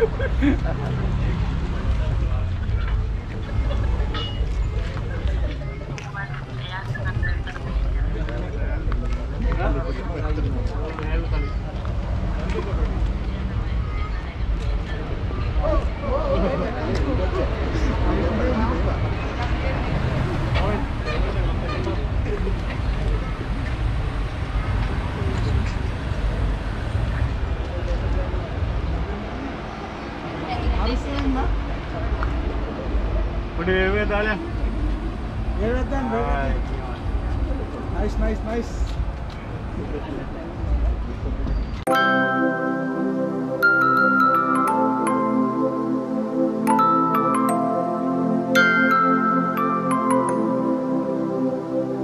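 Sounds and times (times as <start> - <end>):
people talking faintly: 0.0 - 33.5
car rolling with low rumble: 0.0 - 41.8.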